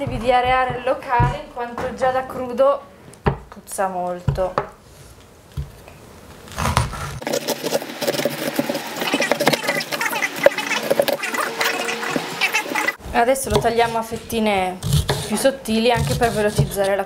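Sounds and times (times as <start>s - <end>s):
knife cutting cabbage on board: 6.5s - 10.0s, 13.5s - 17.0s.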